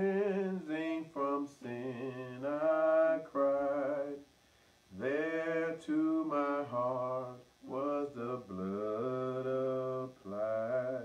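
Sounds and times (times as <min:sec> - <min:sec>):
man singing a hymn unaccompanied: 0:00.0 - 0:04.3, 0:04.9 - 0:11.0.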